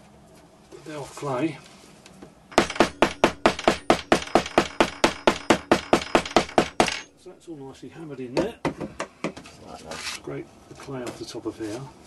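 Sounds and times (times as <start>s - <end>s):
hammer pounding sand: 2.5s - 7.1s.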